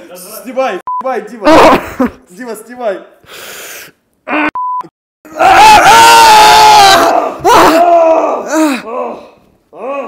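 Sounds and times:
men yelling: 5.3 - 9.2
groans of pain: 5.3 - 10.0.

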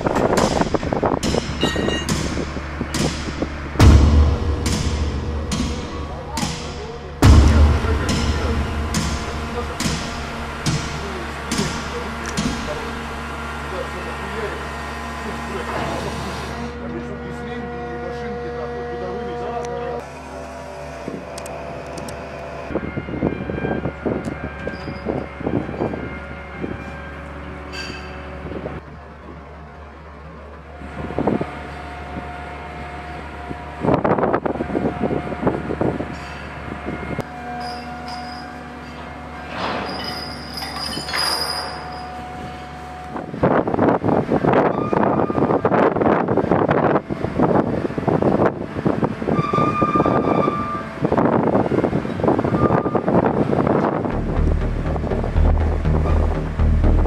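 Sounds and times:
metallic squeals and clanks: 0.0 - 3.8, 22.8 - 28.4, 36.1 - 43.2, 44.4 - 46.1, 49.2 - 53.6
continuous rumbling noise: 0.0 - 57.0
heavy machinery droning: 0.0 - 57.0.

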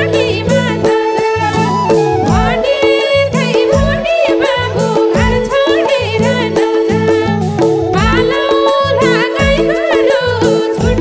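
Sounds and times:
hand drum beat: 0.0 - 11.0
keyboard: 0.0 - 11.0.

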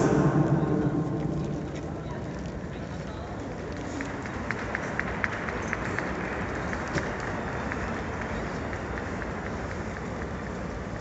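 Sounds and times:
distant crowd clapping: 3.6 - 11.0.

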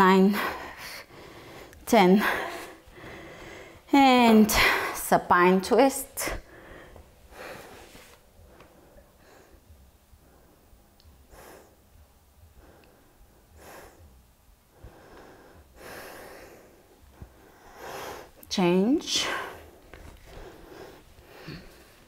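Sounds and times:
woman breathing softly: 0.3 - 3.9, 6.4 - 18.4, 19.2 - 22.0.

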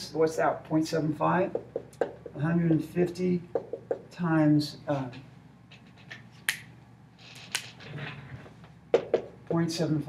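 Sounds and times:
marker tapping whiteboard: 1.4 - 2.4, 3.5 - 4.1, 8.9 - 9.6.

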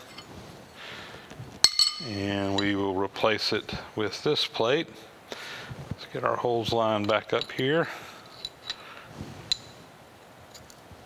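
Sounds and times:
metal sliding: 0.0 - 0.8
ringing metal clinks: 1.6 - 2.8.

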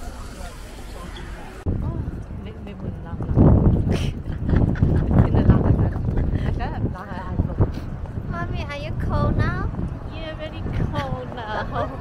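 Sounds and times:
wind buffeting microphone: 0.0 - 12.0
woman laughing hard: 3.9 - 5.2.

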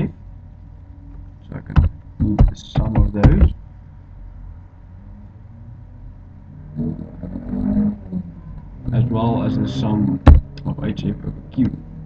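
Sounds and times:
low steady hum: 0.0 - 12.0
person murmuring: 6.8 - 9.4.

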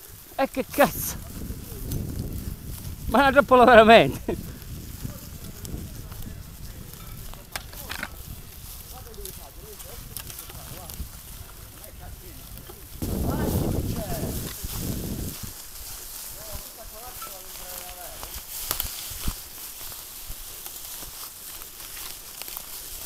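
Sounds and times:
faint voices: 0.0 - 18.4
footsteps crunching in dry leaves: 0.0 - 23.0
sharp clicks from bikes: 1.0 - 23.0.

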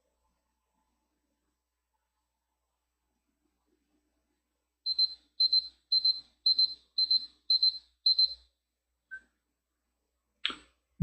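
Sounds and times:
electronic timer alarm beeping: 4.9 - 8.5.

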